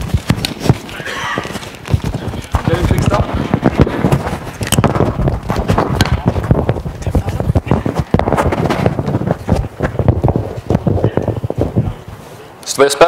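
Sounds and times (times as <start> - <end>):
microphone handling noise: 0.0 - 12.6
indistinct low voices: 5.6 - 8.6, 9.4 - 12.6.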